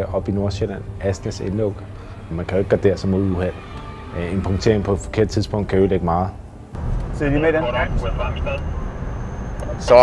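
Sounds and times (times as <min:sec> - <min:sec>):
car road and engine rumble: 0:00.0 - 0:10.0
high-pitched whine: 0:00.4 - 0:10.0.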